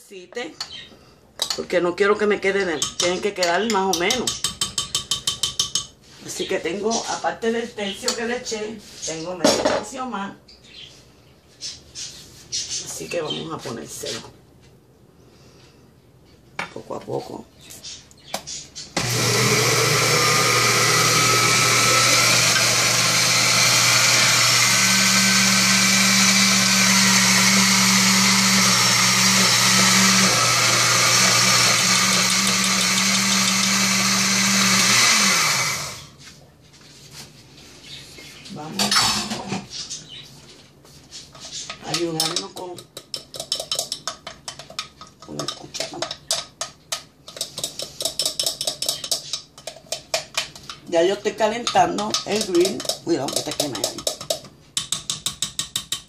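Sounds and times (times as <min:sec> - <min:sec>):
blender running: 0:19.0 - 0:36.2
spoon scraping glass jar: 0:51.6 - 0:54.4.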